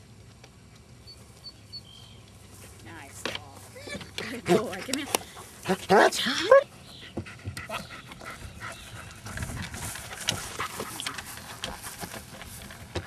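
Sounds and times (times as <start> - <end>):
dog panting: 4.2 - 12.1
paws tapping on wooden plank: 7.1 - 13.0.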